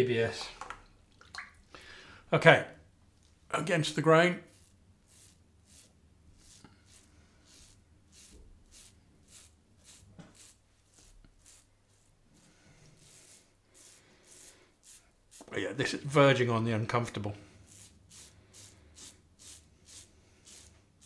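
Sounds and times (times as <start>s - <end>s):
razor scraping stubble: 4.4s - 15.8s, 17.6s - 20.9s.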